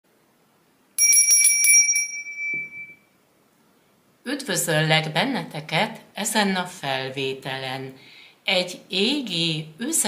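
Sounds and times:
small bell ringing: 1.0 - 3.1.

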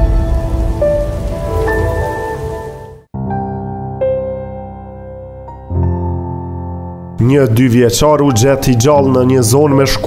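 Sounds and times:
deep rumbling noise: 0.0 - 3.1.

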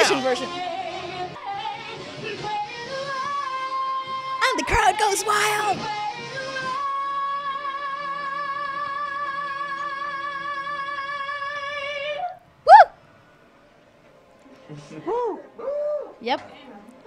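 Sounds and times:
singer belting high note: 4.4 - 5.9
loud whooping cry: 12.7 - 13.0.

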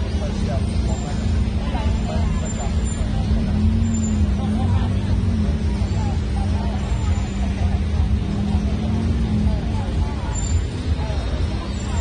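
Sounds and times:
engine hum: 0.0 - 12.0
passers-by voices: 0.0 - 12.0
road traffic rumble: 0.0 - 12.0.

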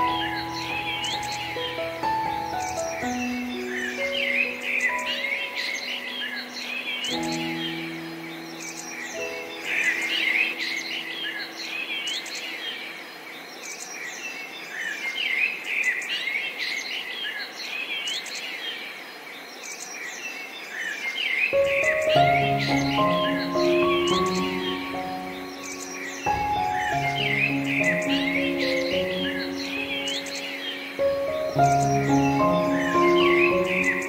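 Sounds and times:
soft piano notes: 0.0 - 12.9, 21.6 - 34.0
songbirds chirping: 0.0 - 34.0.

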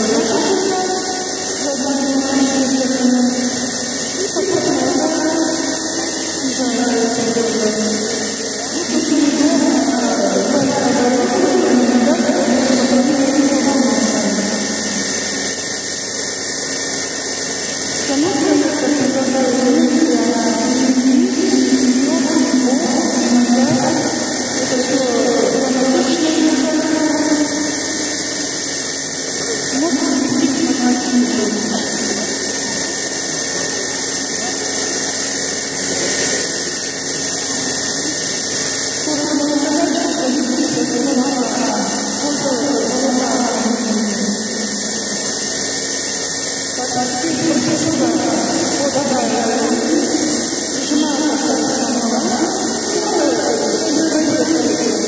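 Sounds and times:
indistinct voices talking: 0.0 - 55.0
milking machine hissing: 0.0 - 55.0.

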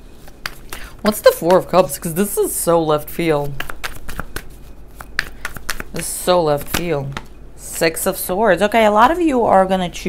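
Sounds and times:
cards being shuffled: 0.2 - 1.7, 3.2 - 7.3.

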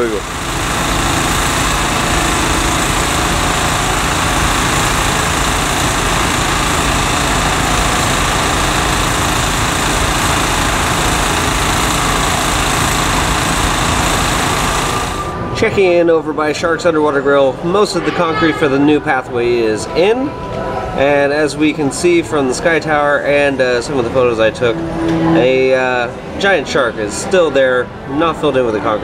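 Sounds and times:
vibratory pile driver running: 0.0 - 15.6.

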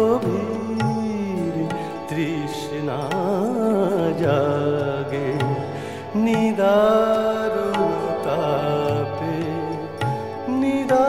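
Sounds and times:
instrumental accompaniment: 0.0 - 11.0
man singing ornamented vocal line: 0.0 - 11.0.

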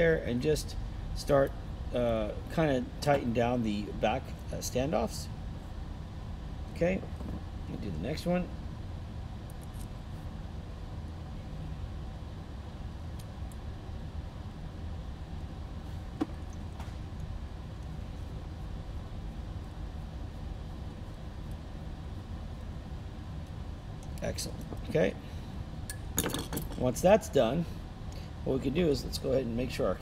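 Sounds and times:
low room hum: 0.0 - 30.0.

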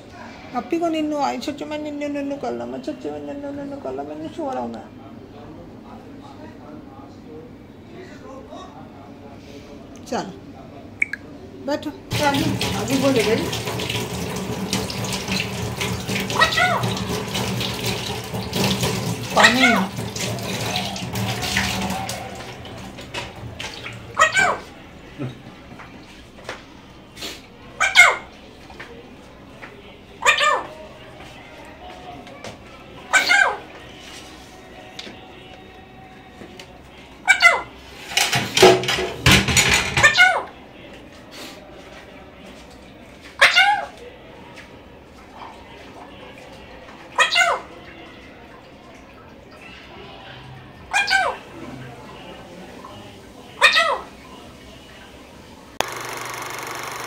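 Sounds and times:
harsh parakeet squawk: 16.4 - 16.8, 24.2 - 24.6, 27.8 - 28.3.

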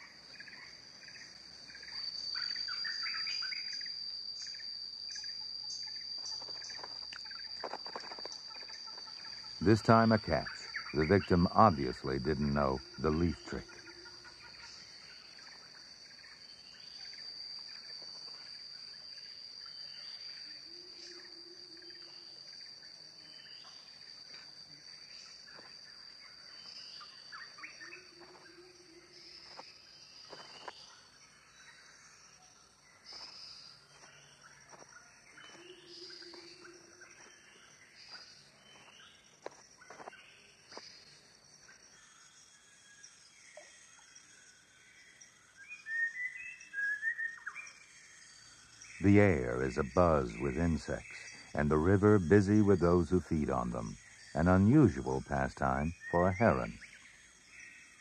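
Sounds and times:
high insect drone: 0.0 - 58.0
loud bird calls: 45.6 - 57.7.

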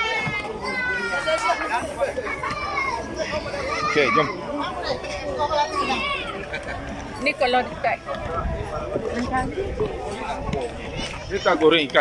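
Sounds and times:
children's voices: 0.0 - 6.9, 10.3 - 12.0
people talking and calling out: 0.0 - 12.0.

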